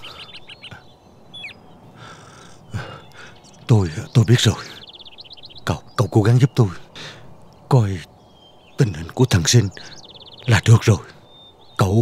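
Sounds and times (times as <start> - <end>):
falling bird chirp: 0.0 - 12.0.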